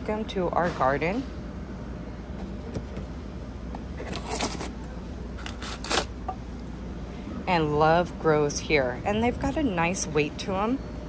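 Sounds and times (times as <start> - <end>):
low store hum: 0.0 - 11.0.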